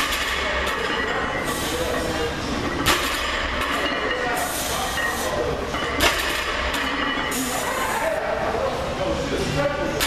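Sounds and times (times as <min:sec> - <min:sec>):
gym background noise: 0:00.0 - 0:10.0.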